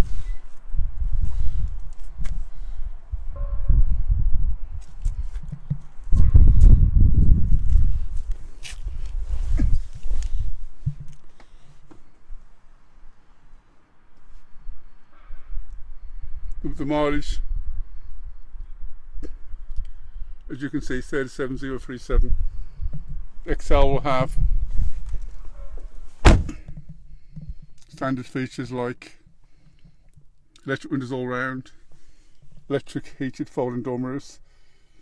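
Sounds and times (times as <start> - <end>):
low rumbling of handled camera: 0.0 - 2.6, 4.8 - 12.4, 22.2 - 28.2
camera handling rumble: 7.5 - 12.1
sharp knock: 26.2 - 26.6
low thump: 26.2 - 27.7.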